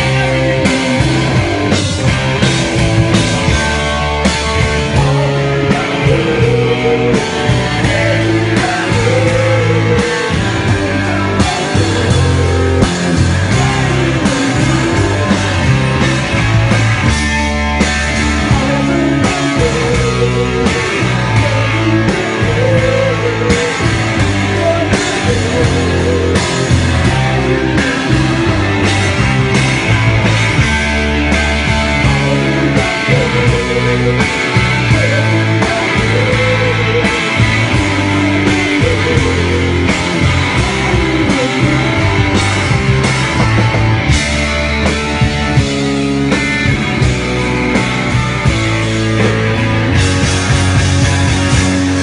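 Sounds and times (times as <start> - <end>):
bass guitar: 0.0 - 52.0
drums: 0.0 - 52.0
electric guitars: 0.0 - 52.0
rock band playing live: 0.0 - 52.0.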